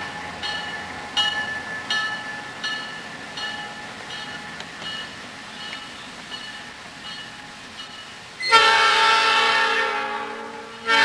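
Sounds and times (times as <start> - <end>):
locomotive air horn chord: 8.4 - 11.0.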